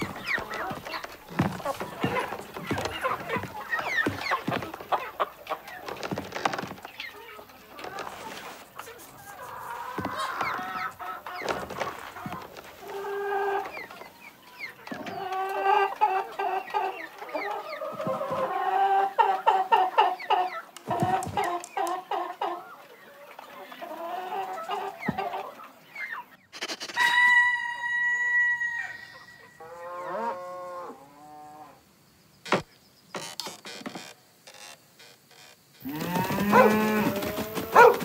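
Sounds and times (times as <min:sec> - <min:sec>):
hens clucking: 0:00.0 - 0:27.4, 0:35.8 - 0:38.0
long high-pitched hen call: 0:27.0 - 0:31.0, 0:35.8 - 0:37.3.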